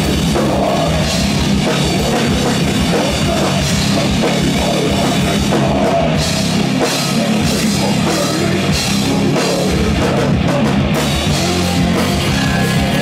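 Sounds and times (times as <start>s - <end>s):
bass guitar: 0.0s - 13.0s
drum kit with cymbals: 0.0s - 13.0s
electric guitar: 0.0s - 13.0s.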